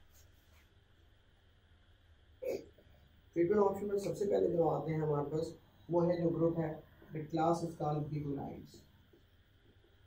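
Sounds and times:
quiet room hum: 0:00.0 - 0:10.0
man coughing: 0:02.4 - 0:02.8.

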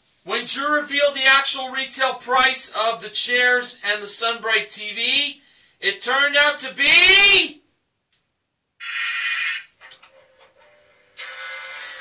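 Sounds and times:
music from small speaker: 0:09.9 - 0:12.0.

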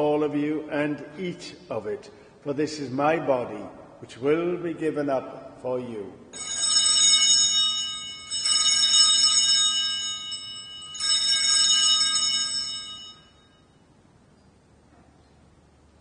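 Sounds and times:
altar bells ringing: 0:06.3 - 0:13.9.

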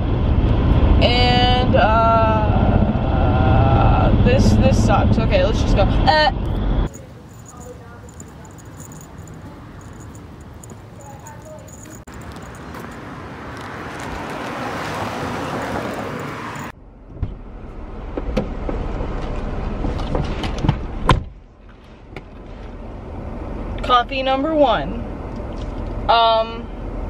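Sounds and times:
low car rumble: 0:00.0 - 0:27.0
passing vehicle rushing: 0:11.7 - 0:20.0.

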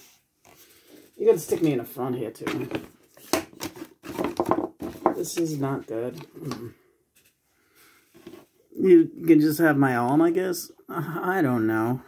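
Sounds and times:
cardboard knocking on wooden counter: 0:04.0 - 0:05.4.

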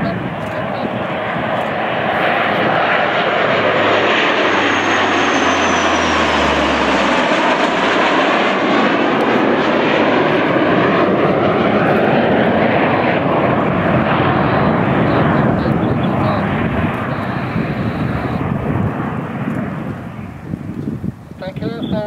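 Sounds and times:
aircraft engines roaring: 0:00.0 - 0:22.0.

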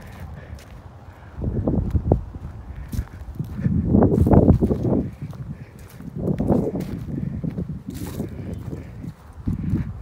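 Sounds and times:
footsteps crunching on dry leaves: 0:00.0 - 0:10.0.

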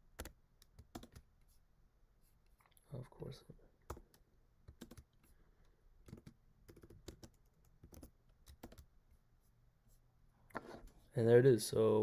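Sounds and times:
faint typing on keyboard: 0:00.1 - 0:01.6, 0:03.8 - 0:09.0.

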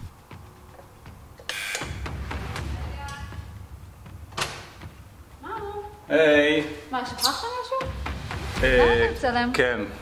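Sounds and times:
footsteps on tiled floor: 0:00.0 - 0:01.5.

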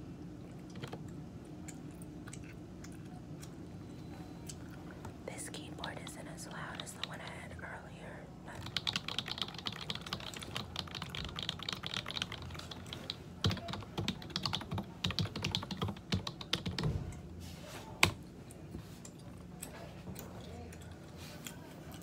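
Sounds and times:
typing on computer keyboard: 0:08.6 - 0:16.9.

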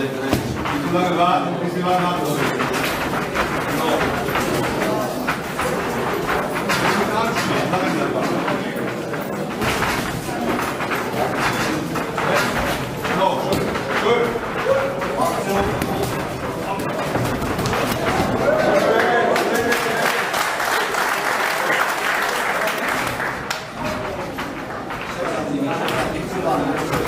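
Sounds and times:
footwork on ring canvas: 0:00.0 - 0:20.7, 0:22.1 - 0:27.0
people talking and calling out: 0:00.0 - 0:27.0.

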